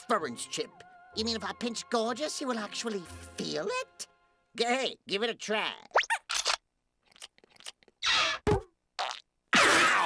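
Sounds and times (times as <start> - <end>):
cartoon sandwich chewing: 6.2 - 8.1.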